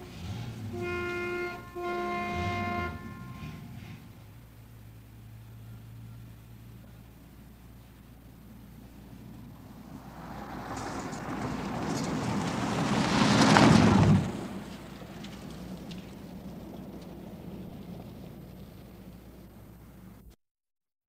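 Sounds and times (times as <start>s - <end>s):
steady low hum and hiss: 0.0s - 11.8s, 14.7s - 20.4s
car passing on dirt road: 0.0s - 20.2s.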